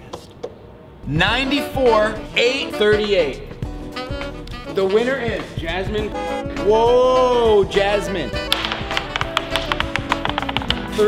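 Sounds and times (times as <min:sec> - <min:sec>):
background music: 0:01.0 - 0:11.0
die clattering down a dice tray: 0:08.5 - 0:11.0.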